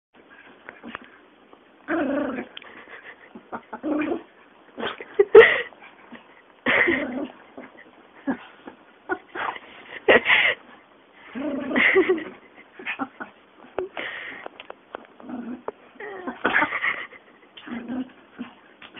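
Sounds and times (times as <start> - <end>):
dog whining: 16.0 - 16.7.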